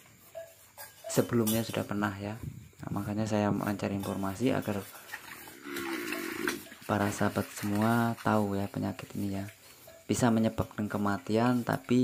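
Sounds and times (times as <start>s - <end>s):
people talking: 1.1s - 4.9s, 6.9s - 12.0s
cow grunting: 5.4s - 6.7s.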